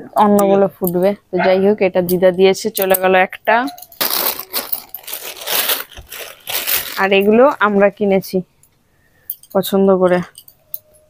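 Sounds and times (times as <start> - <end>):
plastic packet crinkling: 3.9 - 7.7.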